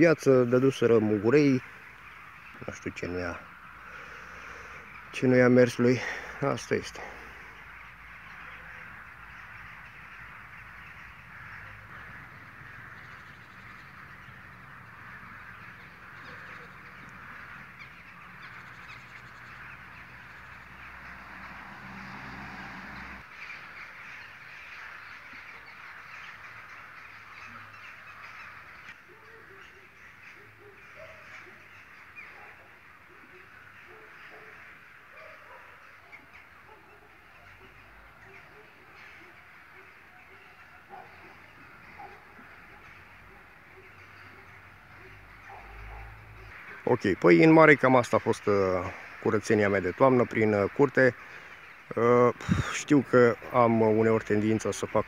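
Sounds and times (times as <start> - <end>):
crows cawing: 0.0 - 55.0.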